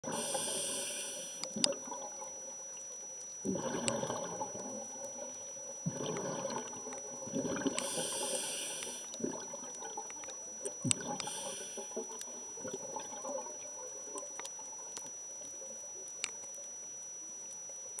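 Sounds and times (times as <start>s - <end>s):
faint high whine: 0.0s - 18.0s
underwater bubbling: 0.0s - 18.0s
hissing regulator breaths: 0.1s - 1.6s, 7.8s - 9.2s, 11.1s - 12.1s.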